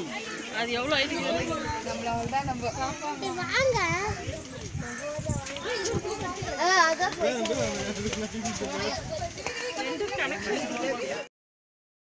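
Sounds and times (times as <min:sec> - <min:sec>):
children calling and chattering: 0:00.0 - 0:11.3.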